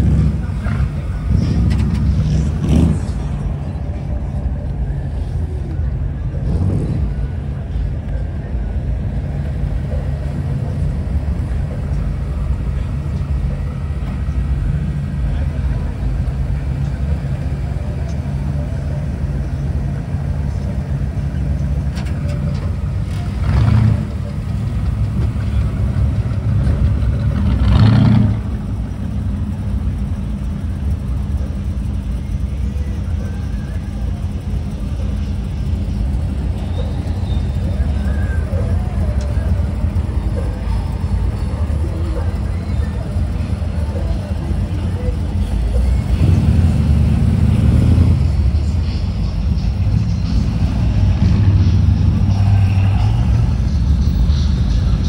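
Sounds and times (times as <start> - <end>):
car engines rumbling past: 0.0 - 55.0.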